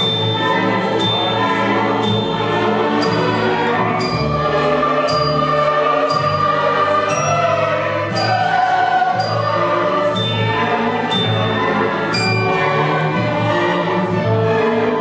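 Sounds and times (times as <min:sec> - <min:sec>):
orchestra and choir performing: 0:00.0 - 0:15.0.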